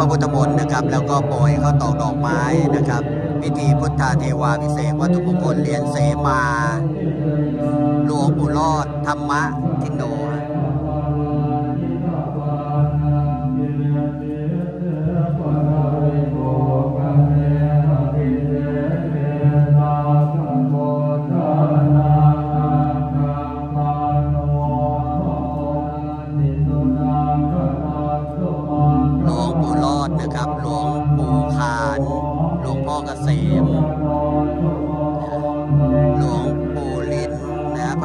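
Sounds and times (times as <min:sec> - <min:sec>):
monks chanting in a drone: 0:00.0 - 0:38.0.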